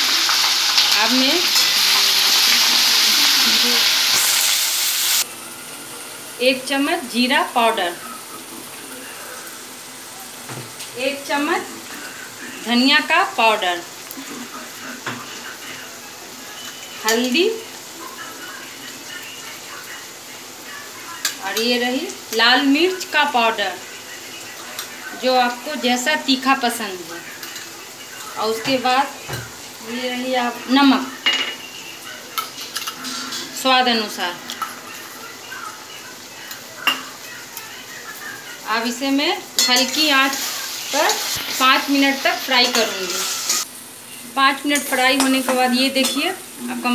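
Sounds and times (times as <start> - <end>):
spices sizzling in oil: 0.0 - 46.9.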